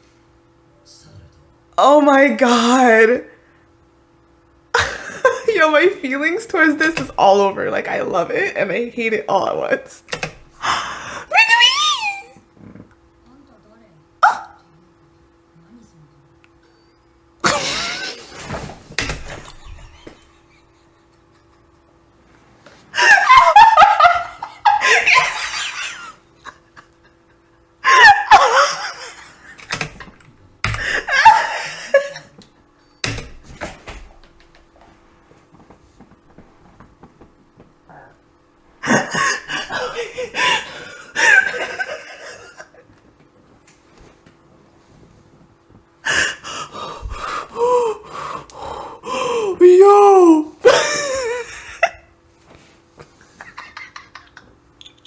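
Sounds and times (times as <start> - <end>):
woman laughing hard: 4.8 - 5.5, 17.4 - 18.3, 19.4 - 21.8, 22.9 - 29.6, 30.8 - 32.4, 38.8 - 42.8, 49.1 - 52.1, 53.4 - 54.6.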